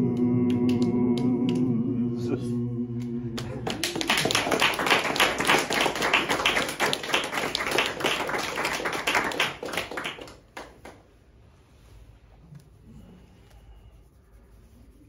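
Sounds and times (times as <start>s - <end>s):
audience applauding: 3.4s - 11.0s.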